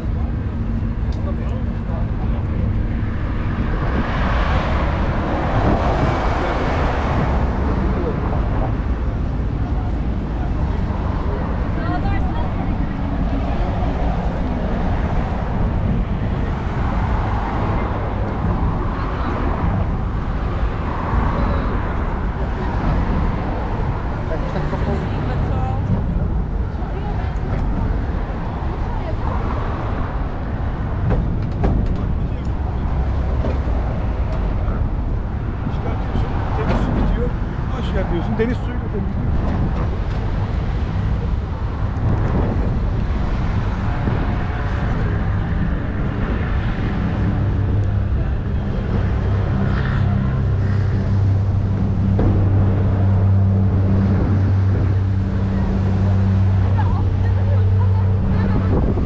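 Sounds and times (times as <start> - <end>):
passersby chattering: 0.0 - 59.0
road traffic noise: 0.0 - 59.0.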